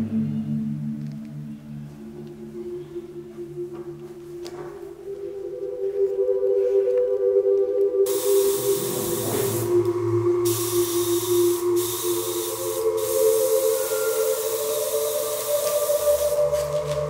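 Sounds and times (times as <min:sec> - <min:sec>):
airbrush spraying hiss: 0:08.1 - 0:17.0.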